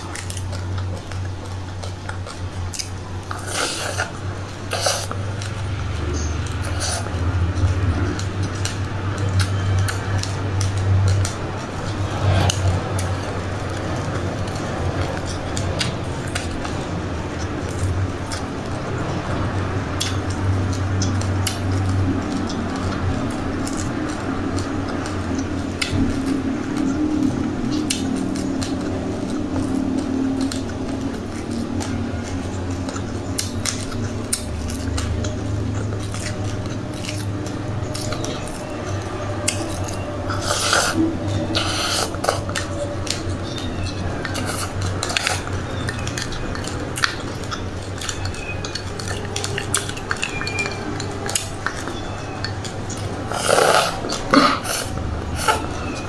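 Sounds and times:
crunchy chewing: 0:00.0 - 0:56.0
steady low hum: 0:00.0 - 0:56.0.

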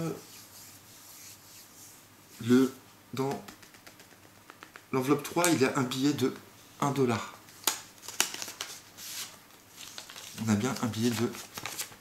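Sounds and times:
person speaking: 0:00.0 - 0:00.4, 0:02.3 - 0:03.6, 0:04.9 - 0:07.4, 0:10.2 - 0:11.5
soft rubbing noise: 0:00.0 - 0:02.9.

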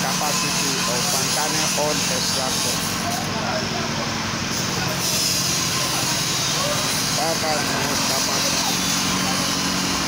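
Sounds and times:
machine humming and hissing: 0:00.0 - 0:10.0.

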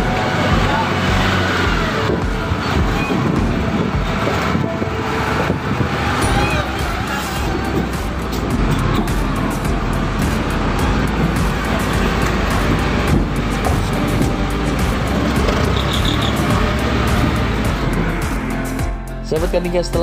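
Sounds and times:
loud vehicle engines running: 0:00.0 - 0:19.0.

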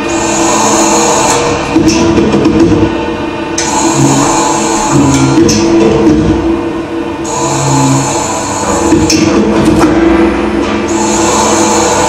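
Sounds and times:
distorted noise drone: 0:00.0 - 0:12.0.

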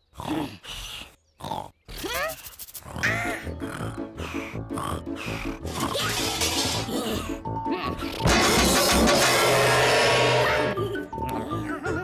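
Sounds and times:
children's cartoon music: 0:01.9 - 0:12.0.

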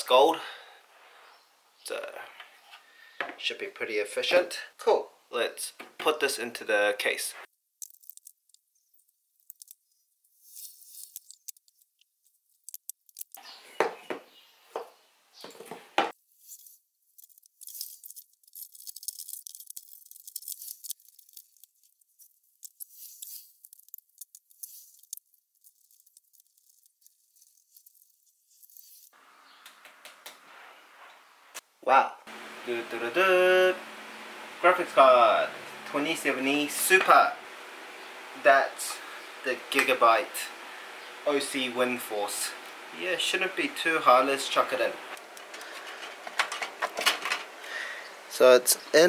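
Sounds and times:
rustles and light scrapes: 0:09.4 - 0:12.6, 0:15.4 - 0:29.2, 0:45.1 - 0:47.5.

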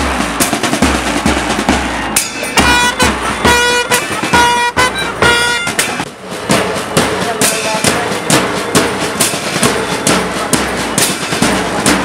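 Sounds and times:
drumming: 0:00.0 - 0:12.0
loud horn notes: 0:01.8 - 0:06.0.

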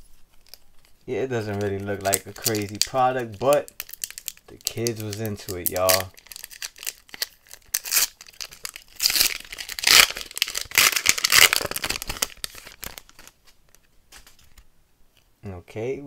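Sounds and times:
cards rustling: 0:00.1 - 0:14.7
foil wrapper tearing and crinkling: 0:00.4 - 0:13.4.

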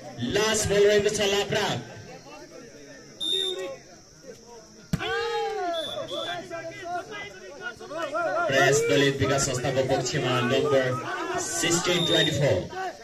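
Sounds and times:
referee's whistle blast: 0:03.2 - 0:03.7, 0:05.0 - 0:06.5, 0:11.6 - 0:12.6
people shouting: 0:04.9 - 0:13.0.

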